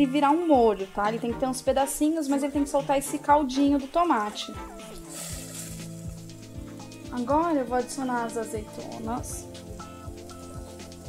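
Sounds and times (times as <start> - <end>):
background music with low notes: 0.0 - 11.0
tomatoes sizzling in oil: 0.1 - 11.0.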